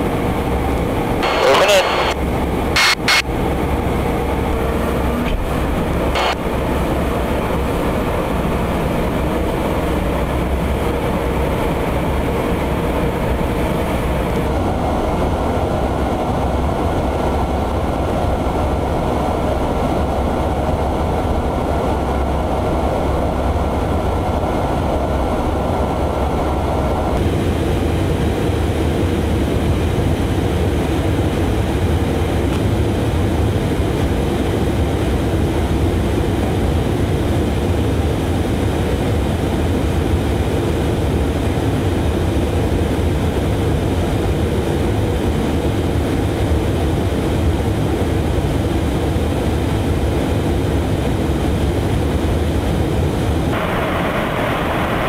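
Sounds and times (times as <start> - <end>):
faint steady whine: 0.0 - 55.0
jet engine rumble and rushing air: 0.0 - 55.0.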